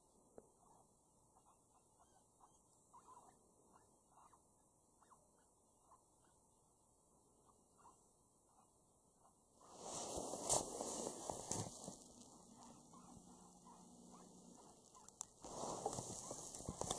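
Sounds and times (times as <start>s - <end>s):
faint electronic squeaks: 0.6s - 4.4s, 5.0s - 6.4s, 11.7s - 16.8s.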